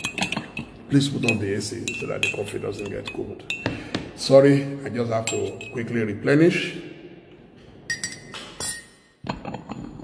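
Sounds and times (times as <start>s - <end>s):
cup clinking: 0.0s - 4.1s, 5.2s - 6.0s, 7.9s - 10.0s.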